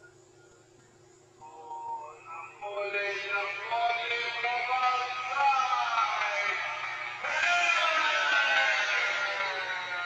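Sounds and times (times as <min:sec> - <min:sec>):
voices shouting wavering calls: 0:01.4 - 0:10.0.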